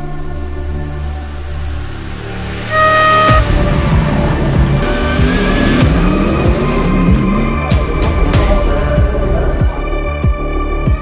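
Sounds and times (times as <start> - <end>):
low drone music: 0.0 - 11.0
short held tone: 2.7 - 3.5.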